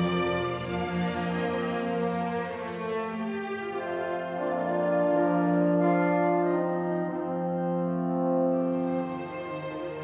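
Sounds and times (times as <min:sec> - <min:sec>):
orchestra playing long held notes: 0:00.0 - 0:10.0.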